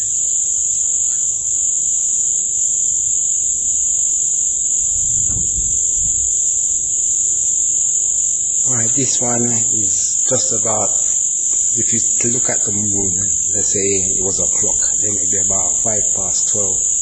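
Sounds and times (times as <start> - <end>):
crickets chirring: 0.0 - 17.0.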